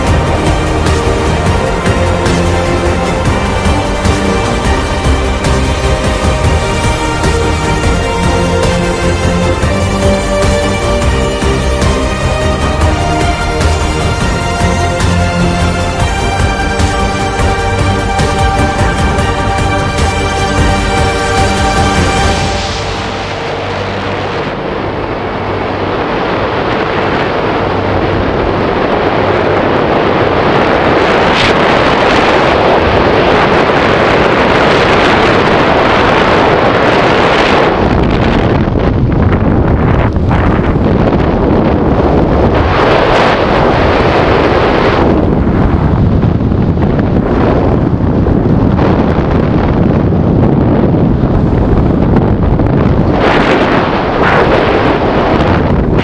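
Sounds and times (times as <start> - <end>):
wind roaring over microphone: 0.0 - 56.0.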